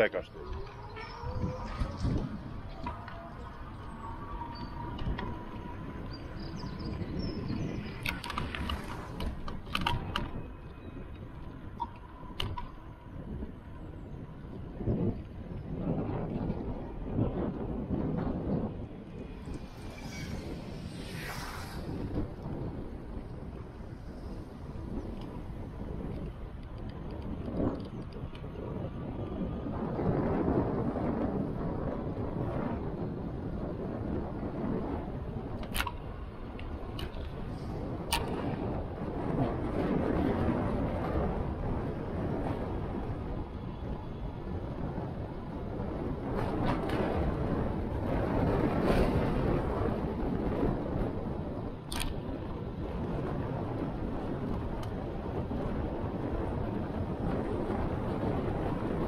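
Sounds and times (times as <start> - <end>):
road rumble: 0.0 - 59.0
wind buffeting microphone: 0.0 - 59.0
bus passing: 0.2 - 14.6, 18.6 - 26.6
sharp clicks or rattles: 8.0 - 10.3.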